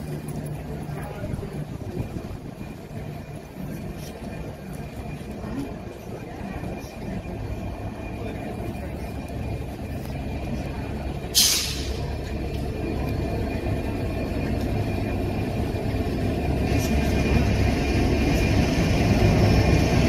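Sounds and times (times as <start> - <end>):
diesel locomotive engine rumbling: 0.0 - 20.0
sharp hiss of air: 11.4 - 12.0.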